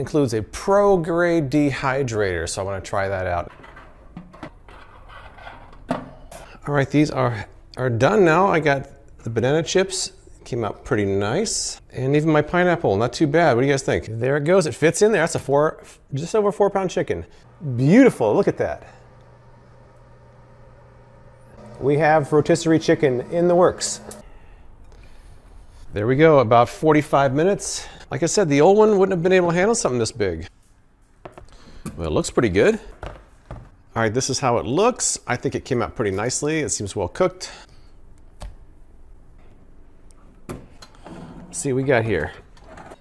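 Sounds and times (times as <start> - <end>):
low hum: 17.4 - 26.2
air fryer fan whirring: 17.5 - 24.2.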